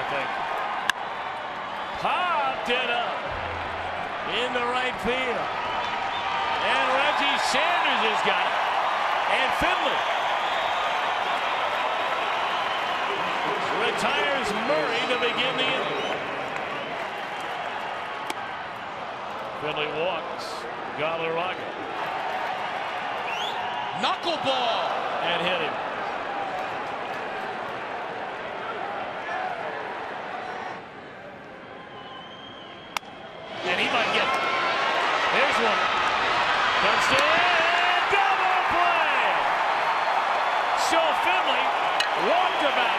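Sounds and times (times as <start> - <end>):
crowd applauding: 0.0 - 19.5, 21.8 - 28.8, 33.4 - 42.9.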